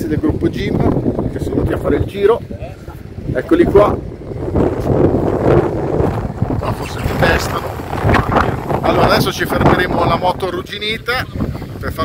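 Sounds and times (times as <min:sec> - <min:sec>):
people talking: 0:00.0 - 0:04.0, 0:06.6 - 0:12.0
wind buffeting microphone: 0:00.0 - 0:12.0.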